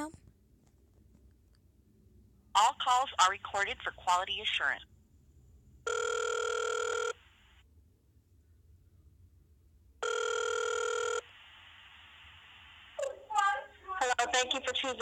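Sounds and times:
telephone ringback tone: 5.9 - 7.2, 10.0 - 11.2.

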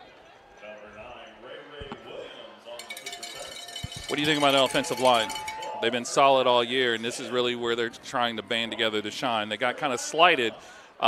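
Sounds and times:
faint distant crowd voices: 0.0 - 11.0
light clinking and rattling: 2.8 - 5.8.

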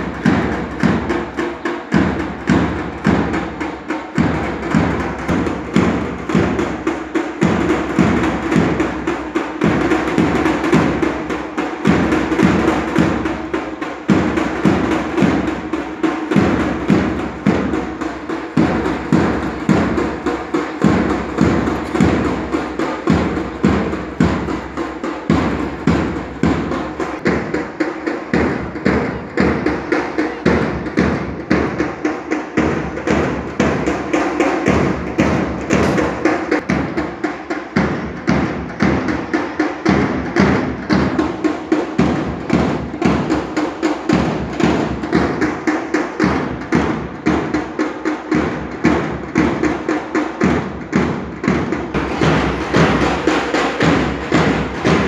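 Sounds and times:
march music with drumbeat: 0.0 - 55.0.

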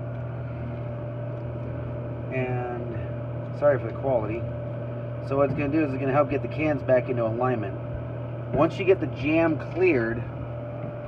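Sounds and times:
vending machine humming: 0.0 - 11.0.

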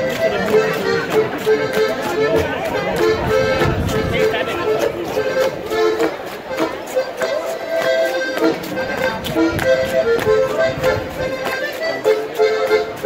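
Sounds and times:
accordion dance tune: 0.0 - 13.0
sharp tapping beat: 0.0 - 13.0.

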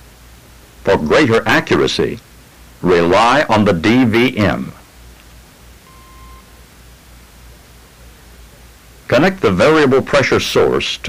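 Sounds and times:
recording hiss and hum: 0.0 - 11.0
steady beep tone: 5.8 - 6.6.

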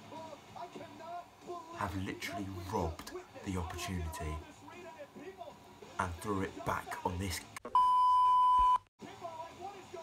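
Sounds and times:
censor bleep: 7.7 - 8.9.

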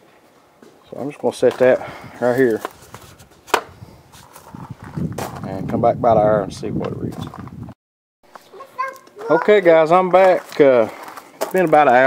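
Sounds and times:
faint handling noise: 0.0 - 5.5.

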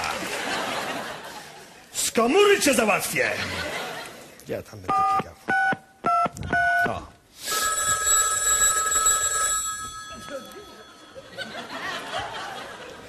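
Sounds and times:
two-tone keypad beeps: 4.9 - 9.1
telephone ringing: 7.4 - 12.2.

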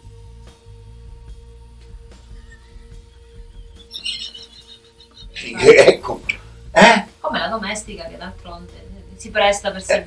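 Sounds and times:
small bird chirping: 3.5 - 5.4.

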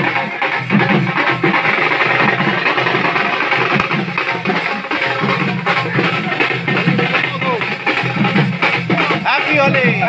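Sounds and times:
hand-beaten barrel drums: 0.0 - 10.0.

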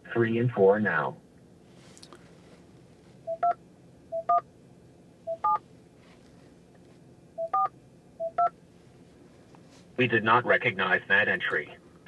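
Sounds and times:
touch-tone key beeps: 3.3 - 4.4, 5.3 - 5.6, 7.4 - 8.5.

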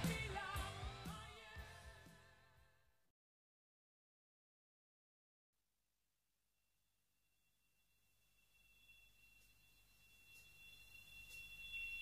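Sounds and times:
faint high whine: 7.2 - 12.0.

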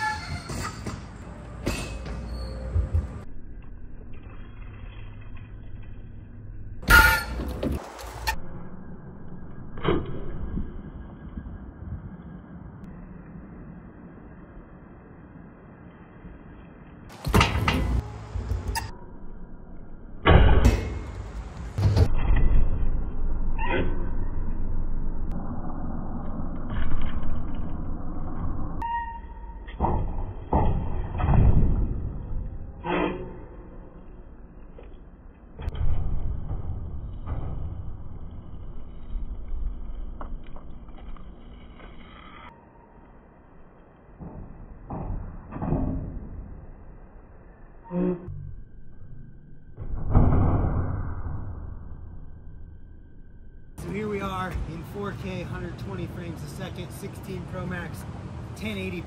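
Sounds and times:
bike tyres rumbling over ramps: 29.6 - 34.2, 35.4 - 42.0.

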